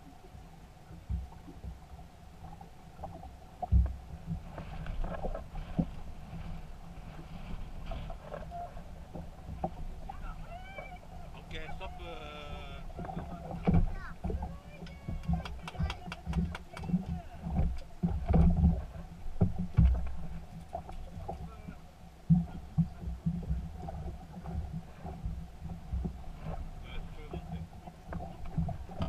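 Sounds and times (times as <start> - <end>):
voices calling out: 10.1 - 17.5.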